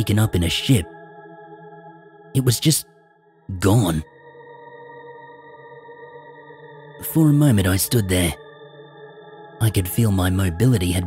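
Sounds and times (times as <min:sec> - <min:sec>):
ambient music drone: 0:00.0 - 0:11.0.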